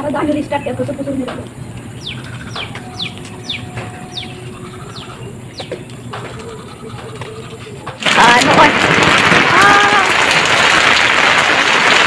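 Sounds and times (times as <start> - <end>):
bird calling high notes: 1.6 - 7.7.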